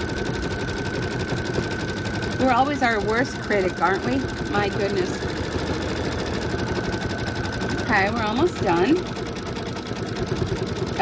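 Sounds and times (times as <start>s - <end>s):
embroidery machine stitching: 0.0s - 11.0s.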